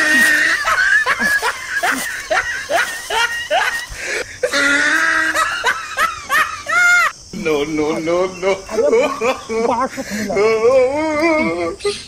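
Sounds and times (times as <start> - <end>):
man laughing: 0.0 - 12.0.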